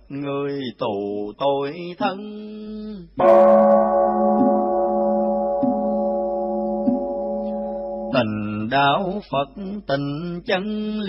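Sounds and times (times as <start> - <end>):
chanting bell ringing: 3.2 - 8.6.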